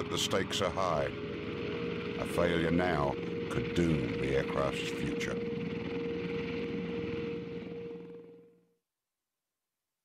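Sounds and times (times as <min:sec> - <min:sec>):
aircraft engines and rotors droning: 0:00.0 - 0:08.7.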